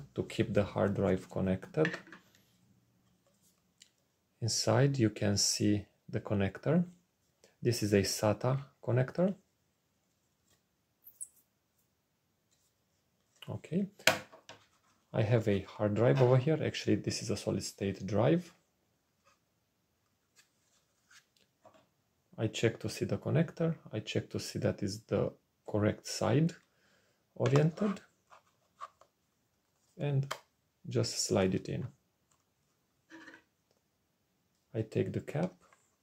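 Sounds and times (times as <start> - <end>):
scratchy plastic rub: 20.2 - 21.4, 27.6 - 29.1, 33.0 - 33.5.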